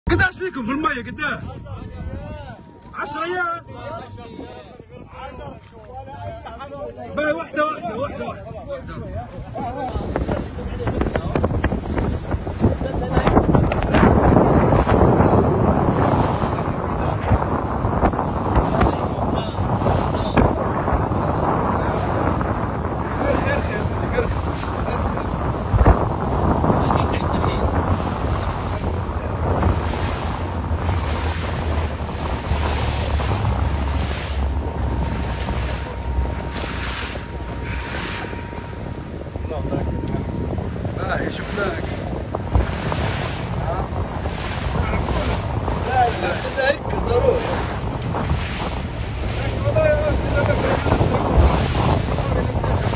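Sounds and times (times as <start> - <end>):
boat engine rumble: 0.0 - 52.9
wind buffeting microphone: 0.1 - 52.9
rushing water: 7.1 - 52.9.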